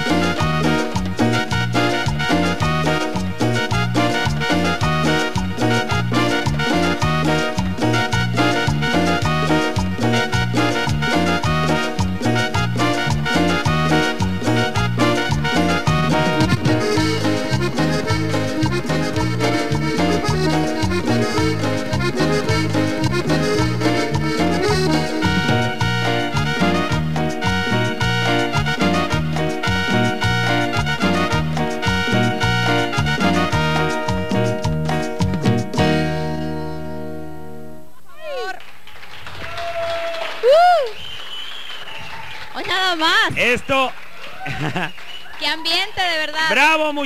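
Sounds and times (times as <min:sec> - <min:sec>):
hand percussion: 0:00.0 - 0:36.0
pulsing bass line: 0:00.0 - 0:37.3
piano accordion: 0:00.0 - 0:37.9
voices whooping: 0:39.4 - 0:42.4, 0:44.2 - 0:45.8.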